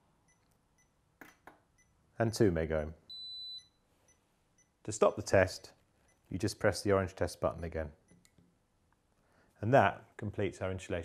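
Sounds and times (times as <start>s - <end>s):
high-pitched tester beep: 3.1s - 4.8s.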